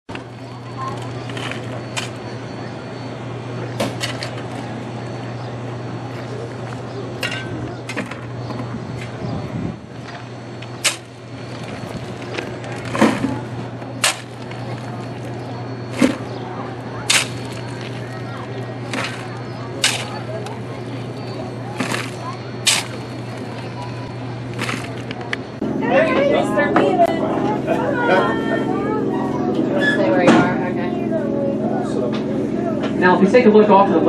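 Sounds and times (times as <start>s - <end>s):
steady low hum: 0.1s - 34.0s
coal clattering into plastic bucket: 3.8s - 4.7s, 6.6s - 8.3s, 10.0s - 16.3s, 17.0s - 25.4s
shovel scraping coal: 3.9s - 4.8s, 10.0s - 25.4s.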